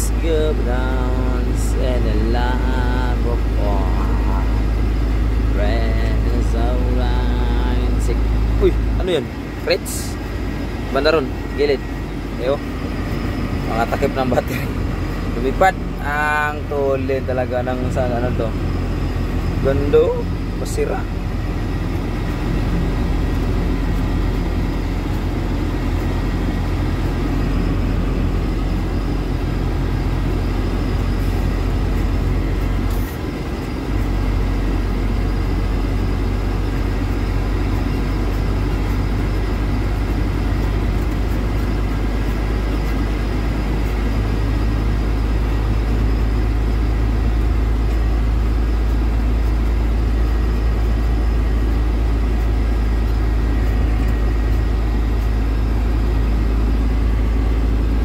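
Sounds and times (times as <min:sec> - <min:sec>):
truck engine and road noise: 0:00.0 - 0:58.0.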